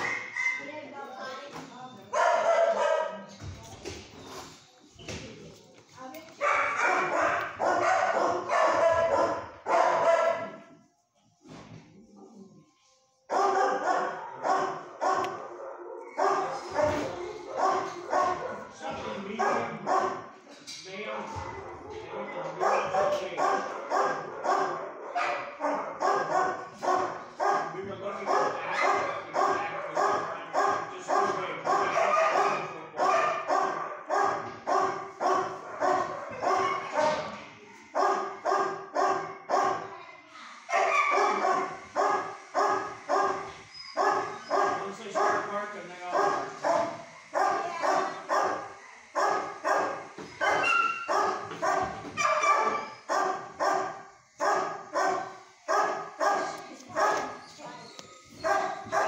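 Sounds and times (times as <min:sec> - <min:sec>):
dogs barking: 0:00.0 - 0:00.8, 0:02.1 - 0:03.3, 0:06.4 - 0:10.7, 0:13.3 - 0:20.4, 0:21.4 - 0:40.0, 0:40.7 - 0:59.0.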